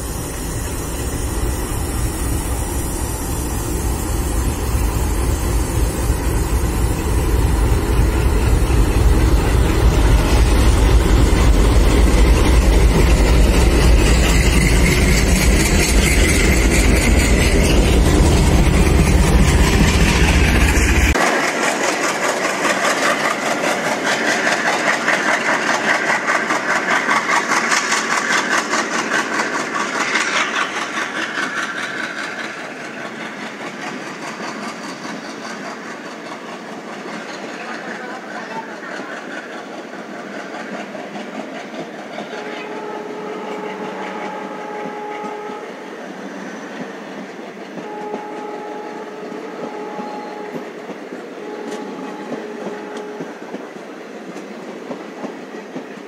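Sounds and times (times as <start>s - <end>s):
diesel locomotive engine rumble: 0.0s - 56.0s
train wheels clattering on rail joints: 7.2s - 45.6s.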